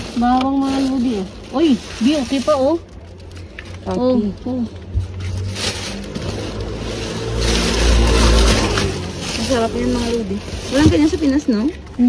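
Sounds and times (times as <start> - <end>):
low vehicle engine rumble: 0.0 - 12.0
plastic bags rustling: 0.0 - 12.0.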